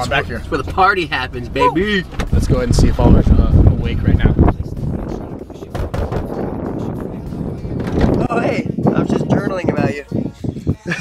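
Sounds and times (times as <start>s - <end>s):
wind on microphone: 2.3s - 11.0s
knock on metal door: 5.7s - 6.4s.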